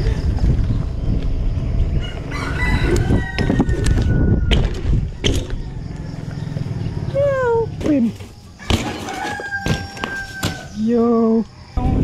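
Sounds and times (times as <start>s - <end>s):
wind on microphone: 0.0s - 5.8s, 11.8s - 12.0s
bike tyre rumble on concrete: 0.0s - 10.8s
rooster crowing: 2.0s - 7.1s, 8.5s - 10.8s.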